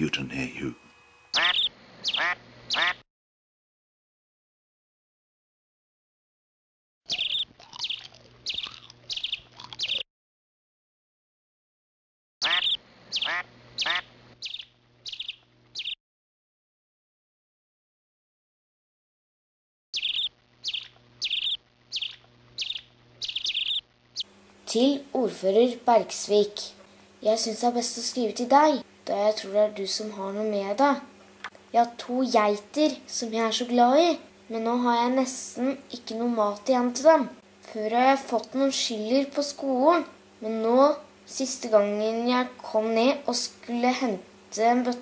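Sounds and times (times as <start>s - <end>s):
duck quacks: 1.4s - 3.0s, 12.4s - 14.1s
songbird chirping: 7.1s - 10.0s, 12.4s - 16.0s, 20.0s - 24.3s.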